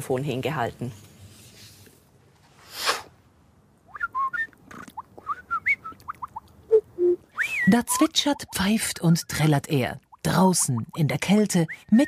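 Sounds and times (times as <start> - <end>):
breathy hiss: 2.6 - 3.2
man whistling bird chirps: 3.9 - 4.6, 5.2 - 6.0, 6.7 - 8.2.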